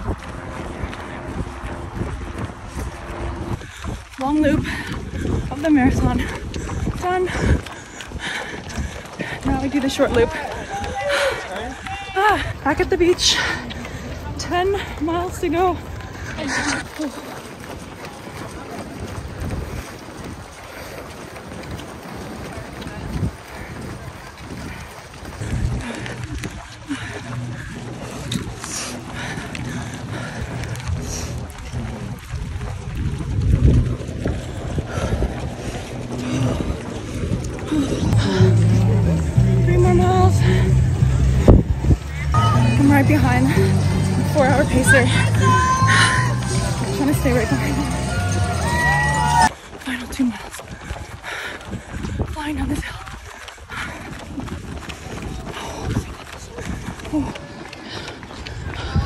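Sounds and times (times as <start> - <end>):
faint voices: 0.0 - 32.9, 34.0 - 59.0
wind rumbling on microphone: 0.0 - 59.0.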